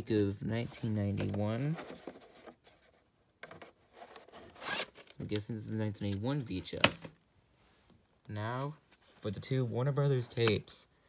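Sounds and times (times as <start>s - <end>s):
cassette sleeve scraping rustles: 0.6s - 6.9s.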